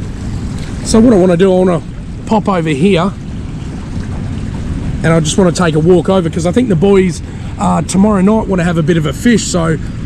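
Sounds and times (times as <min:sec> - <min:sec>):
boat motor rumble and hiss: 0:00.0 - 0:10.0.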